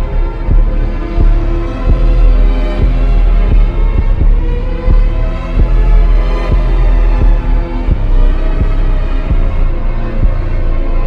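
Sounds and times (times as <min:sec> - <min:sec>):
heavy drum hits: 0:00.0 - 0:09.6
deep bass: 0:00.0 - 0:11.0
hip-hop instrumental: 0:00.0 - 0:11.0
synth chords: 0:00.0 - 0:11.0.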